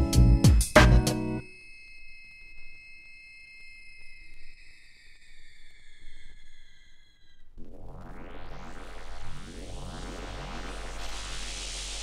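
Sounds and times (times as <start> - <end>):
high synthesizer tone sliding down: 4.6 - 12.0
faint low rumble: 7.3 - 12.0.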